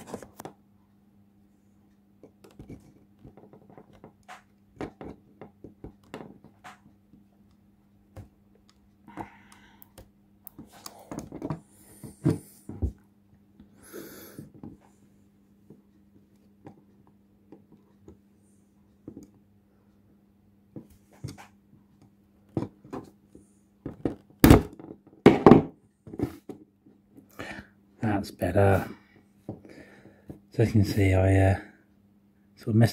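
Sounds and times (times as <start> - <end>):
small plastic clicks and taps: 2.2 - 7.2
louder knocks: 24.4 - 25.7.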